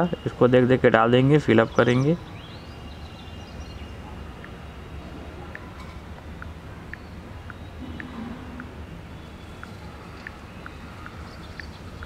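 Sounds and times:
low rumble: 7.7 - 9.5.

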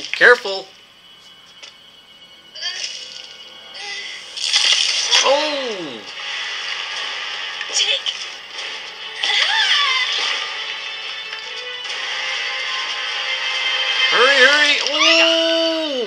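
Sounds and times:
steady noisy rush: 5.3 - 15.6
cartoon sound effects: 9.2 - 10.4, 14.2 - 16.0
cartoon music: 9.2 - 10.6, 13.8 - 16.0.

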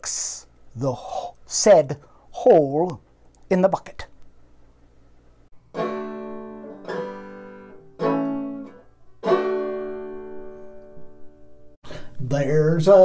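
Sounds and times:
strummed string instrument chords: 5.6 - 11.7.

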